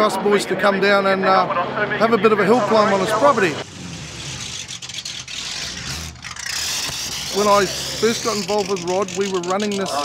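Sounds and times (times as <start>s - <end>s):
car engine idling: 2.2s - 10.0s.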